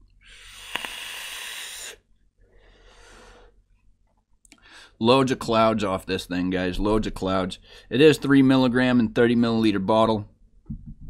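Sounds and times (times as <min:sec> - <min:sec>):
person exhaling vapour: 0:00.2 - 0:03.5
airy hiss of vape draw: 0:00.3 - 0:02.0
vape click: 0:00.4 - 0:01.6.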